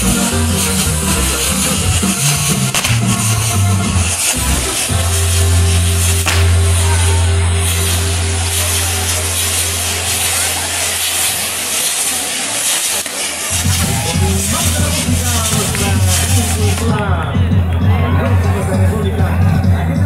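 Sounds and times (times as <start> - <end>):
loud music: 0.0 - 11.9, 13.5 - 20.0
fireworks hissing and fizzing: 0.0 - 17.0.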